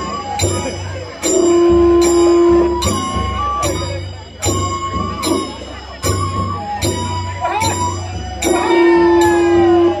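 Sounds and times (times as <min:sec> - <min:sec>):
metal cymbal strikes: 0:00.0 - 0:10.0
long held note: 0:01.4 - 0:02.8.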